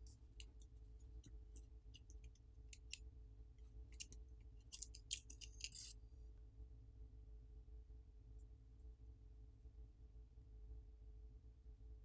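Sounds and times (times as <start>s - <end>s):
small parts clicking and scraping: 0.0s - 3.0s, 3.9s - 6.0s
faint low room hum: 0.0s - 12.0s.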